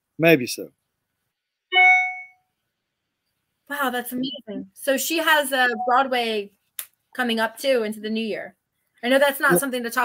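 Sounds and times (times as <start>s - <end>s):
short chime: 1.8s - 2.4s.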